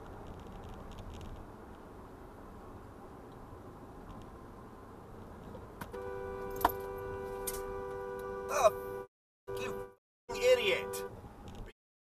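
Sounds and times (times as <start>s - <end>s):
road noise inside moving car: 0.0s - 11.8s
car horn held steadily: 5.9s - 11.2s.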